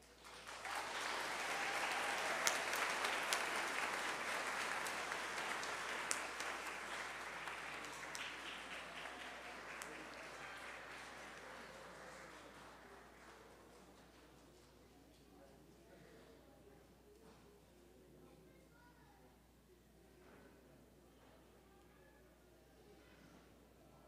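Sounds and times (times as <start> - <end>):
audience applauding: 0.0 - 13.7.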